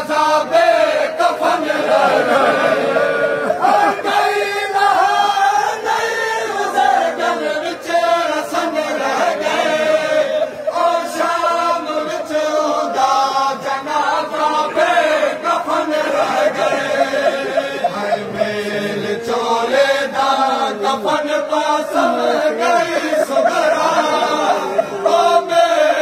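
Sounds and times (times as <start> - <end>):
crowd of men chanting: 0.0 - 26.0.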